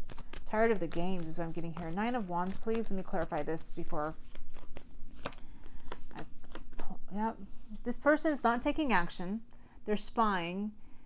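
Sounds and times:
cards flicking and slapping: 0.0 - 1.9, 4.2 - 6.9.

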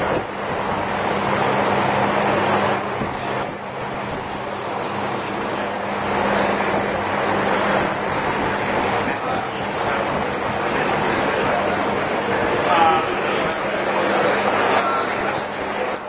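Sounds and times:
loud rushing noise: 0.0 - 15.9.

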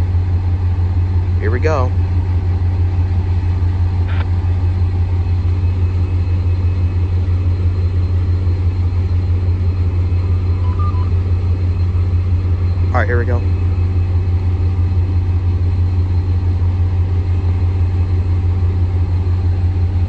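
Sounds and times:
diesel locomotive rumbling: 0.0 - 20.0.

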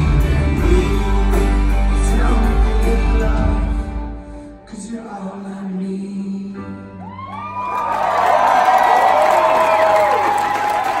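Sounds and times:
audience cheering and whooping: 7.0 - 11.0.

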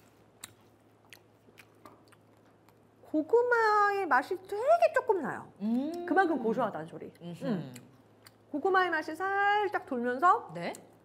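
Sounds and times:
person chewing crispy cracker: 0.1 - 3.0.

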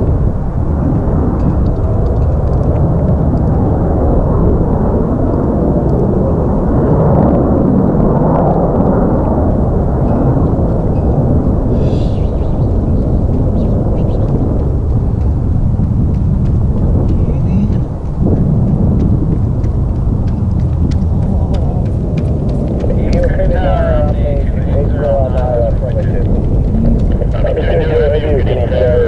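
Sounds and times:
deep jet rumble: 0.0 - 29.0
voices talking: 10.0 - 14.7, 17.1 - 18.0, 22.6 - 29.0.

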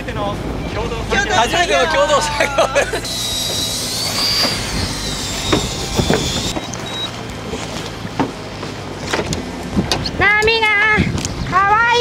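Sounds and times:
sea noise: 0.0 - 9.7
wind: 0.0 - 12.0
long high wavering call: 1.8 - 7.1.

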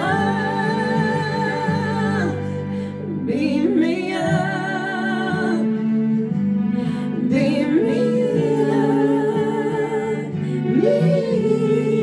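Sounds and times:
woman singing a ballad: 0.0 - 12.0.

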